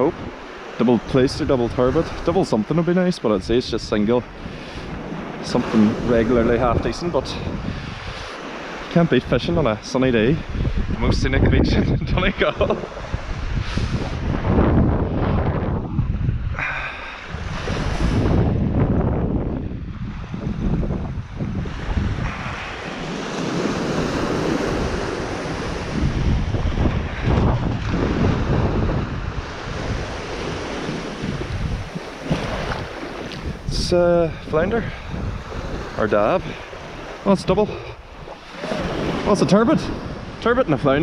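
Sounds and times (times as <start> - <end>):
small waves washing on sand: 0.0 - 41.0
wind buffeting microphone: 0.0 - 41.0.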